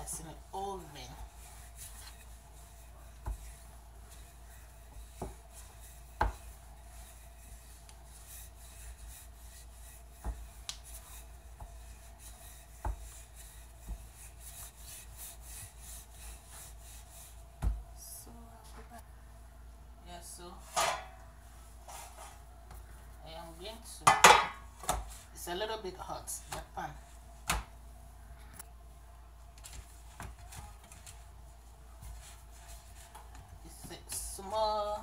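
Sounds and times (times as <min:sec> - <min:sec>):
rolling pin rubbing on dough: 0:00.0 - 0:17.8, 0:29.9 - 0:35.0.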